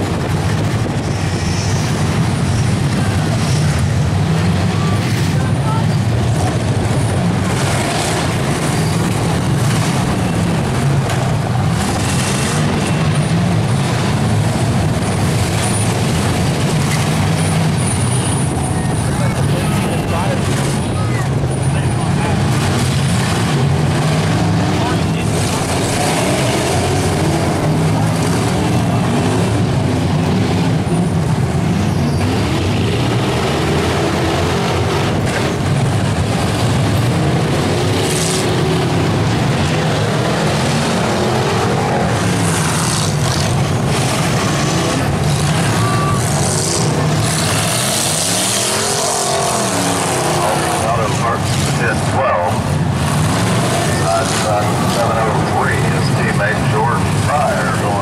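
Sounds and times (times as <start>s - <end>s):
car engines revving hard: 0.0s - 58.0s.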